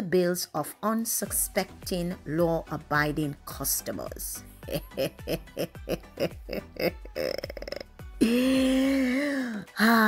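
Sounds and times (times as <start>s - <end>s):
woman's wordless vocal sounds: 6.5s - 10.0s.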